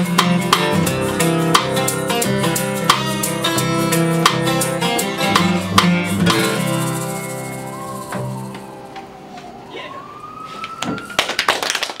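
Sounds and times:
people clapping: 10.6 - 12.0.

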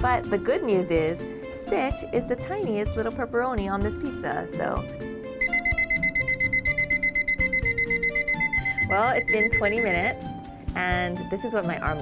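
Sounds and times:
rapid electronic timer beeping: 5.4 - 10.3.

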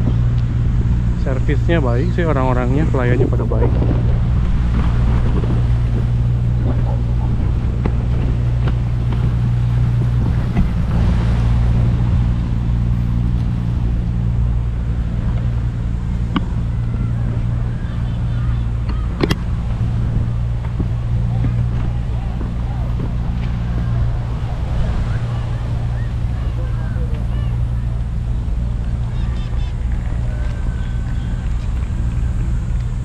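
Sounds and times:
vehicle engine drone: 0.0 - 33.0.

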